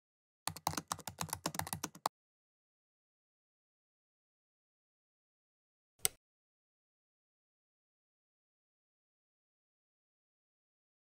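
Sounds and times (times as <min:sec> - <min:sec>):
fast typing on keyboard: 0:00.5 - 0:02.1.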